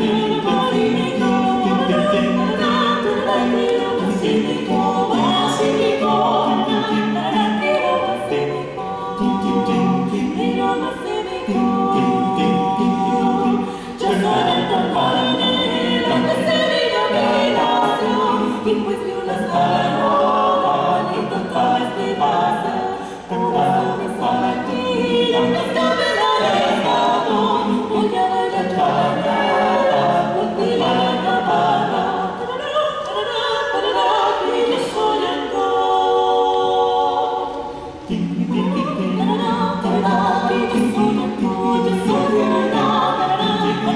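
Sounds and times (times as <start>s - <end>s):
vocal ensemble singing a cappella: 0.0s - 43.9s.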